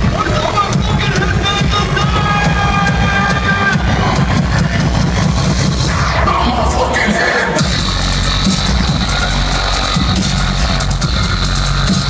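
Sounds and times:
dubstep music over sound system: 0:00.0 - 0:12.0.

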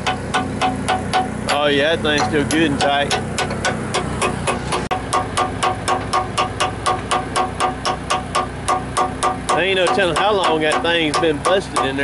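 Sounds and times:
hammer tapping on steel: 0:00.0 - 0:12.0
steady low hum: 0:00.0 - 0:12.0.

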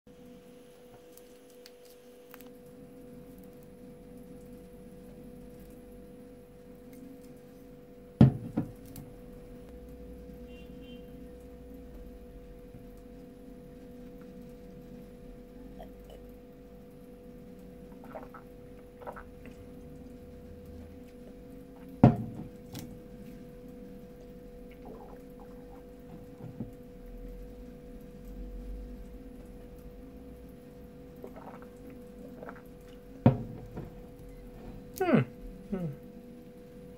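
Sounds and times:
glass bottle knocking on table: 0:08.2 - 0:08.7, 0:22.0 - 0:22.5.

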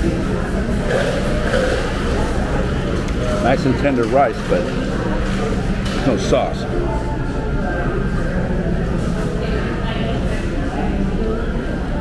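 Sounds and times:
faint indistinct voices: 0:00.0 - 0:12.0
restaurant room rumble: 0:00.0 - 0:12.0.

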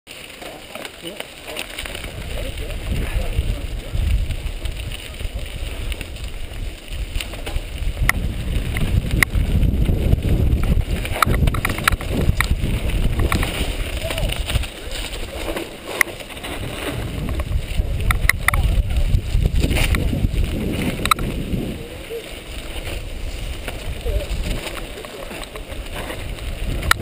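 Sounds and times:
bike rattling over bumps: 0:00.1 - 0:27.0
tyre noise on dirt: 0:00.1 - 0:27.0
wind rumbling on microphone: 0:00.2 - 0:27.0.

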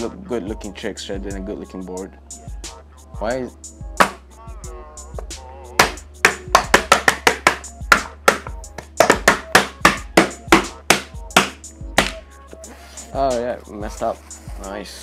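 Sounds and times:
hand slapping griptape: 0:04.0 - 0:04.2, 0:05.8 - 0:12.2.

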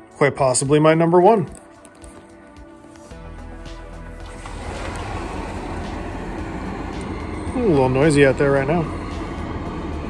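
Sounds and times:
soft background music: 0:00.0 - 0:10.0
outdoor rumble: 0:03.7 - 0:10.0.

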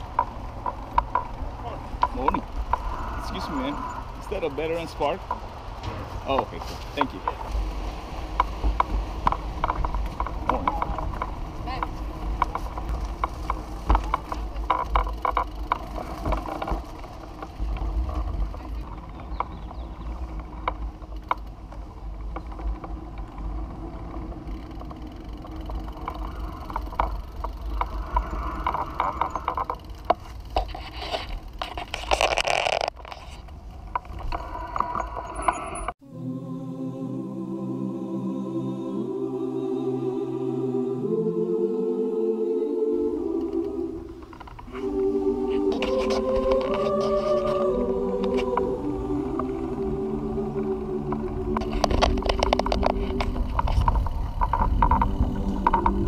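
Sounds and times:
low wind rumble on microphone: 0:00.0 - 0:36.0, 0:43.4 - 0:56.0
frame rattling and clicking: 0:04.6 - 0:19.6, 0:51.0 - 0:56.0.

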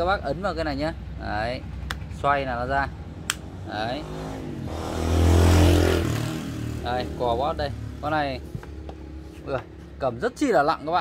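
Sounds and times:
vehicle engine passing by: 0:01.6 - 0:09.6.

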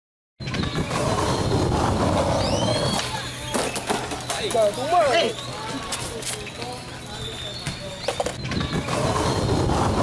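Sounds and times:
skateboard rumbling on concrete: 0:00.4 - 0:10.0.

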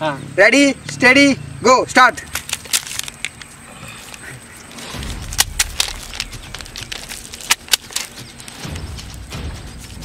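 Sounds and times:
low rumble: 0:04.8 - 0:10.0
sharp slaps: 0:05.0 - 0:10.0.

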